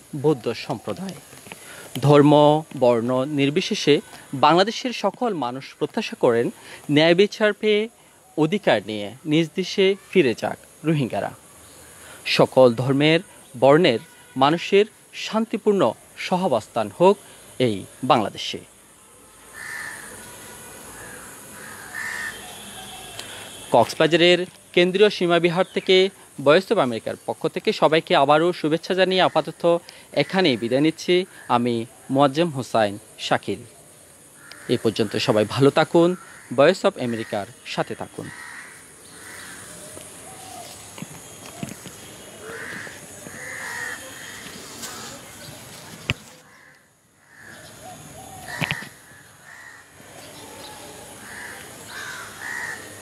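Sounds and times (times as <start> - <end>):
faint steady hiss: 0.0 - 53.0
birds calling harshly: 19.4 - 24.1, 29.0 - 53.0.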